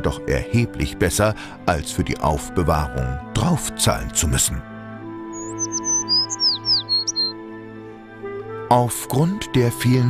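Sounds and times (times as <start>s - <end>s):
background music: 0.0s - 10.0s
bird chirping: 5.3s - 7.4s.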